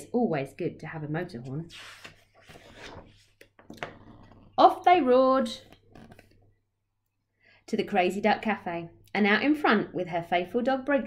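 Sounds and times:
paper pages rustling: 1.6 - 4.5, 5.6 - 6.4.

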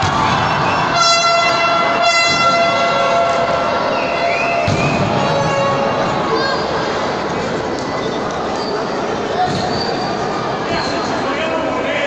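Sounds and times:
arena crowd noise: 0.0 - 12.0
horn steady note: 0.8 - 6.4.

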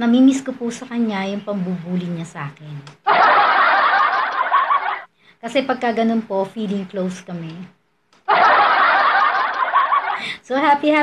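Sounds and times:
canned laughter: 3.1 - 5.1, 8.3 - 10.2.

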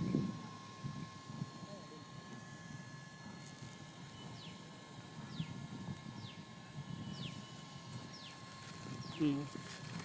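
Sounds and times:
faint two-tone hum: 0.0 - 10.0.

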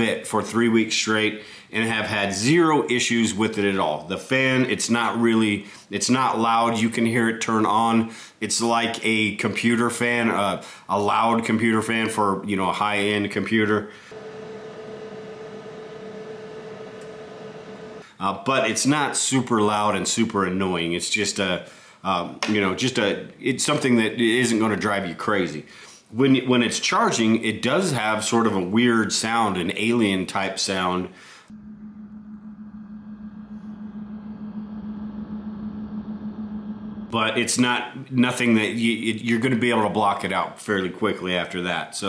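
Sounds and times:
cooling fan whirring: 14.2 - 18.0.

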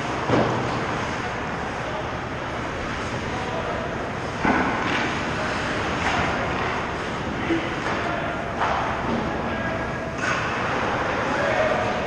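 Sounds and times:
arena noise: 0.0 - 12.0.

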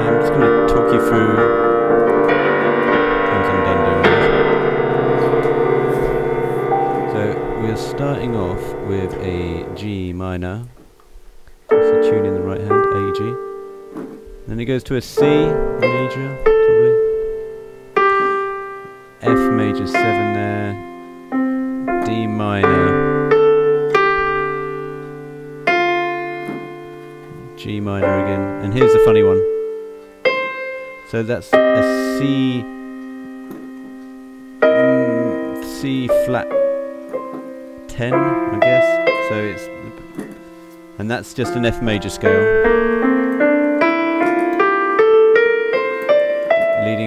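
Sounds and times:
digital piano chords: 0.0 - 47.0.

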